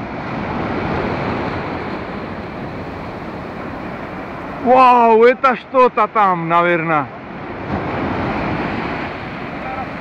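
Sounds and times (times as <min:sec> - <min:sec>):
surf breaking and washing up: 0:00.0 - 0:10.0.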